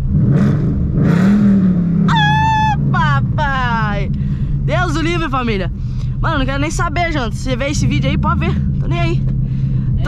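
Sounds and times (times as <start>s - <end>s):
car engine revving: 0.0s - 10.0s.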